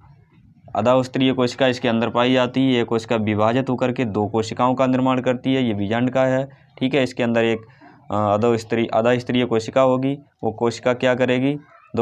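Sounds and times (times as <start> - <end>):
man speaking: 0.7 - 12.0.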